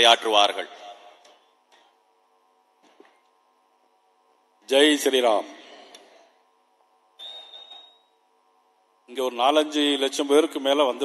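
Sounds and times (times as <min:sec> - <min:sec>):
thin steady high whistle: 0:07.2 - 0:08.2.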